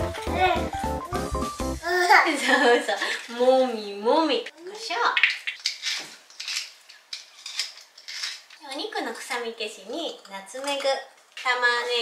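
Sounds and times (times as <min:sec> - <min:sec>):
pepper mill grinding: 0:05.2 - 0:09.0.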